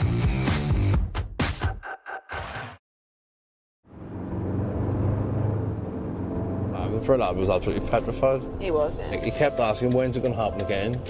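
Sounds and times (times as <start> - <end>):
vehicle engine and road noise: 3.8 - 11.0.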